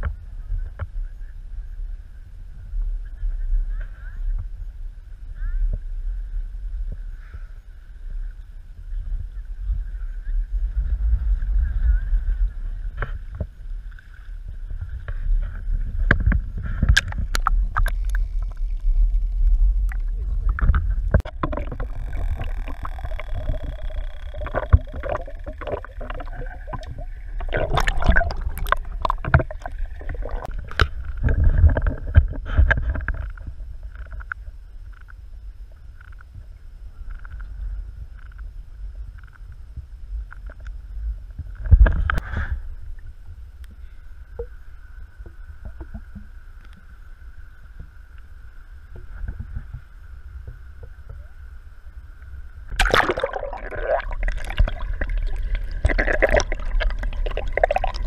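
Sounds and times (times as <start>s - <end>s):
steady low rumble: 0.0s - 58.0s
seawater sloshing and splashing: 20.0s - 31.6s, 52.8s - 58.0s.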